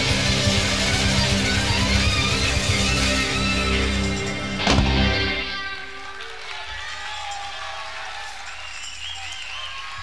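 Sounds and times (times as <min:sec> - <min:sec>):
guitar-led rock band: 0:00.0 - 0:06.5.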